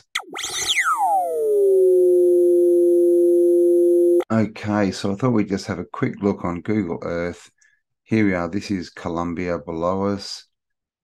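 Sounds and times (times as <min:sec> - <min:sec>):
synthesized tone sweeping down: 0:00.0 - 0:04.2.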